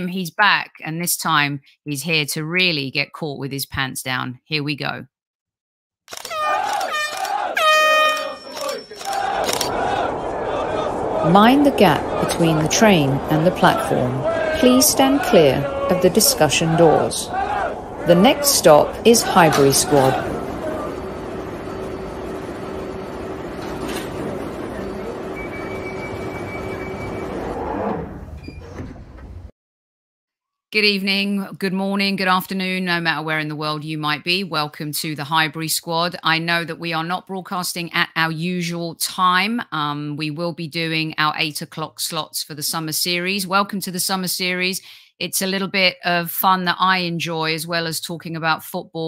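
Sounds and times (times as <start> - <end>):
train horn blasts: 6.3 - 9.3
train rumbling: 7.6 - 29.5.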